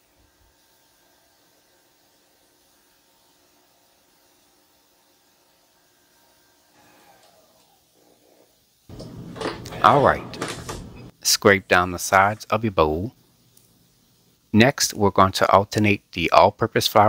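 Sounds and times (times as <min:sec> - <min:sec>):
stand mixer motor hum: 0:06.3 - 0:07.6.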